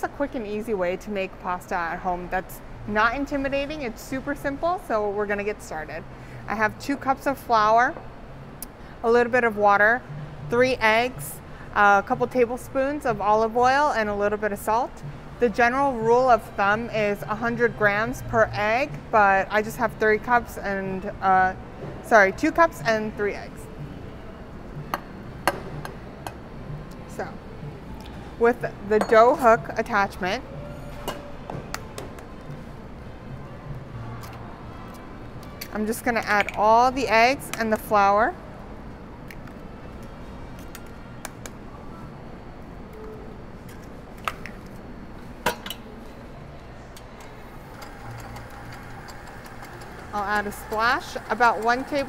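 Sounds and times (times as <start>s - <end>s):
low kitchen hum: 0.0s - 52.0s.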